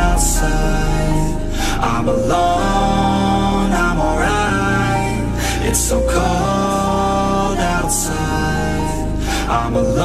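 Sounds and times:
song with steady bass: 0:00.0 - 0:10.0.

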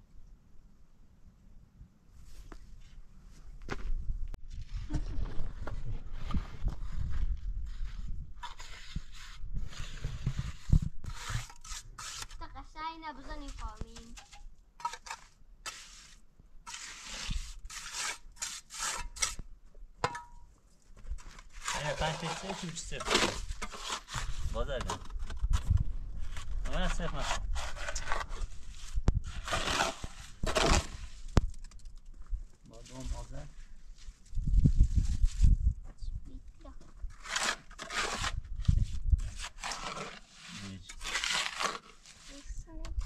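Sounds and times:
trowel scraping metal basin: 0:08.4 - 0:12.4, 0:13.4 - 0:19.4, 0:21.2 - 0:25.6, 0:26.2 - 0:31.2, 0:37.1 - 0:38.5, 0:39.2 - 0:42.5.

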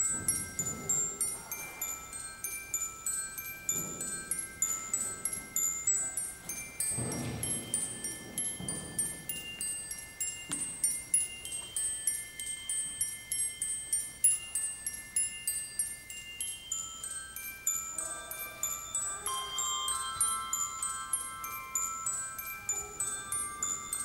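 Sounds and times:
high handbell strikes: 0:00.0 - 0:24.0
low bell tones ringing: 0:00.0 - 0:24.0.

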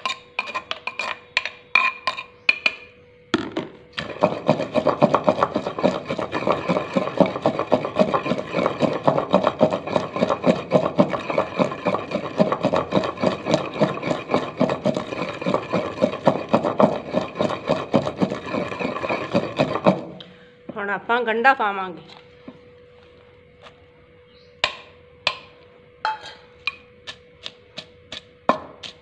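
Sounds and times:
wooden pestle pounding in mortar: 0:03.4 - 0:20.2, 0:24.6 - 0:25.5, 0:26.7 - 0:29.0.

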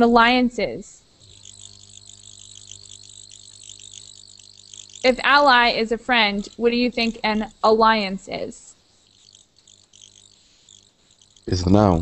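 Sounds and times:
faint electrical hum: 0:00.0 - 0:12.0
high pulsing chirr: 0:00.0 - 0:12.0.

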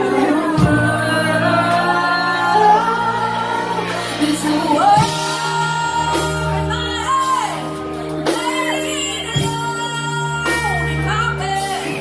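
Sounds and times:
drums: 0:00.0 - 0:12.0
electric guitar: 0:00.0 - 0:12.0
woman singing into microphone: 0:00.0 - 0:12.0.

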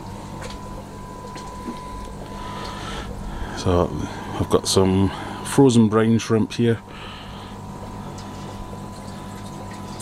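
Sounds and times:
water movement: 0:00.0 - 0:05.6, 0:06.8 - 0:10.0
pump running with low hum: 0:00.0 - 0:10.0.

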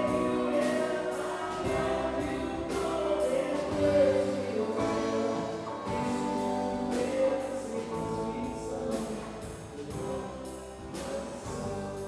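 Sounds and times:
drum kit with cymbals: 0:00.0 - 0:12.0
electric guitars: 0:00.0 - 0:12.0
keyboard: 0:00.0 - 0:12.0
person singing: 0:00.0 - 0:12.0.

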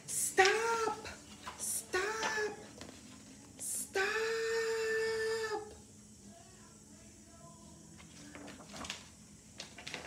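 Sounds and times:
woman calling out: 0:00.1 - 0:01.1, 0:01.7 - 0:02.6, 0:03.7 - 0:05.7.

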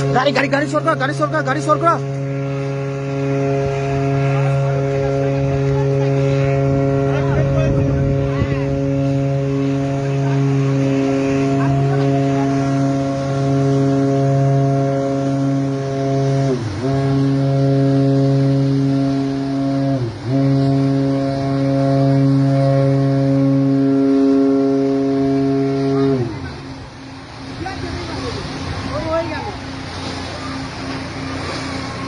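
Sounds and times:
ship's horn blast: 0:00.0 - 0:32.0.

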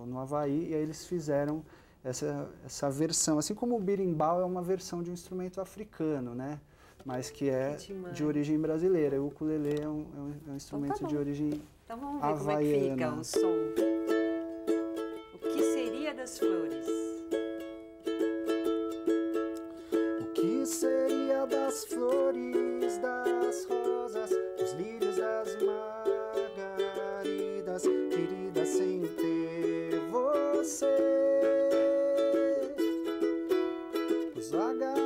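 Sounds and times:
ukulele strumming: 0:12.2 - 0:35.0
man singing: 0:20.1 - 0:35.0.

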